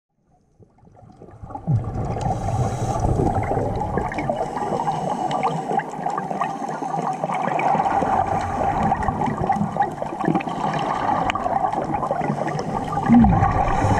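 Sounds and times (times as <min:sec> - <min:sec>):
muffled underwater rushing and bubbling: 0:00.3 - 0:13.9.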